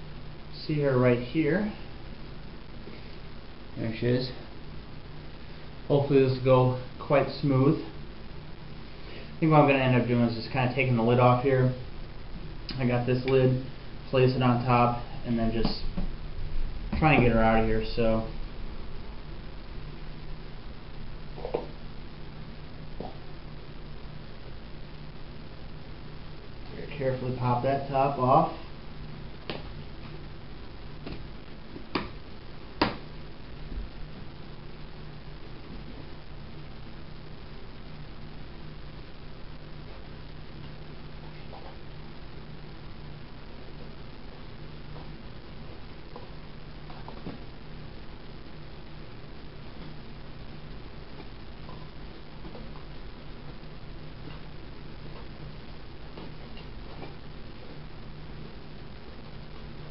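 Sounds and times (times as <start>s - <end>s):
low hum and hiss: 0.0s - 59.9s.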